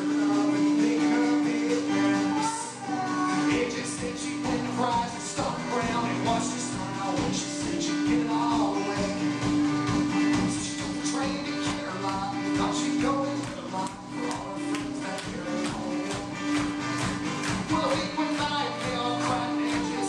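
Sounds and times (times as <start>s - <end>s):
acoustic guitar: 0.0s - 20.0s.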